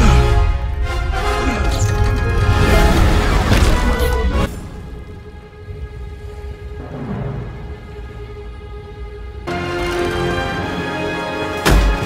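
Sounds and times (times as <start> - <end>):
low rumble: 0.4 - 9.5.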